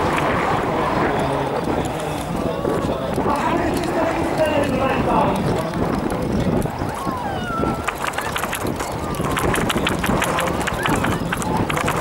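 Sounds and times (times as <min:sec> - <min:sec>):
people talking: 0:00.0 - 0:12.0
plane engine rumbling: 0:00.0 - 0:12.0.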